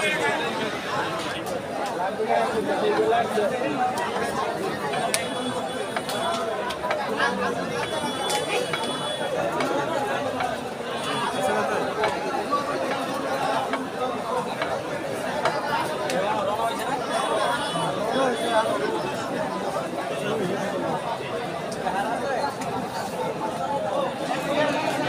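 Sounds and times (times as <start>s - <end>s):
many men talking: 0.0s - 25.0s.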